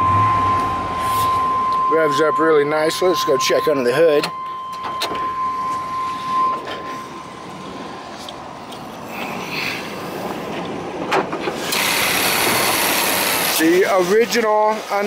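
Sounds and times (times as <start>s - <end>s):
steady high tone: 0.0s - 10.3s.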